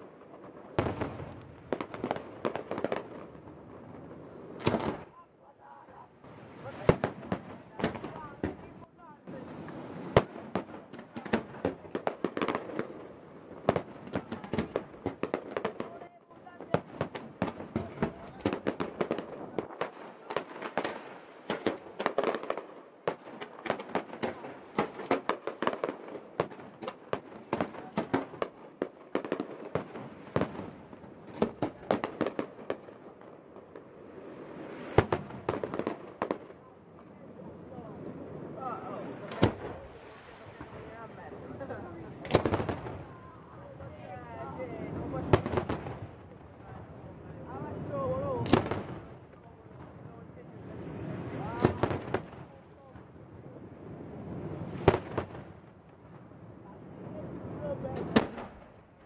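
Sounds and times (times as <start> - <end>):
fireworks crackling: 0.0 - 59.0
loud firework bangs: 0.3 - 5.2, 6.2 - 36.6, 37.7 - 43.2, 44.4 - 46.8, 47.5 - 53.1, 53.8 - 56.3, 57.3 - 58.9.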